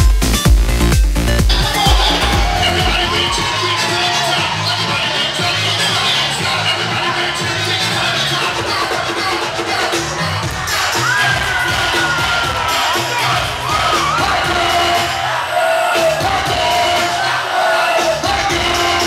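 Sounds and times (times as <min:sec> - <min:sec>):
club music with bass beat: 0:00.0 - 0:15.2, 0:16.0 - 0:17.4, 0:18.0 - 0:19.0
crowd cheering and shouting: 0:01.4 - 0:19.0
sliding high note: 0:01.5 - 0:04.0.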